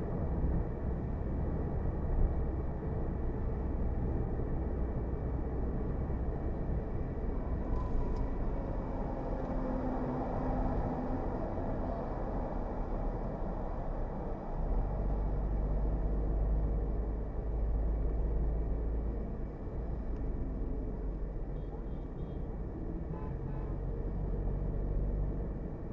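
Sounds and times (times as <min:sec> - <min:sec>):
car tyres and engine rumble: 0:00.0 - 0:25.9.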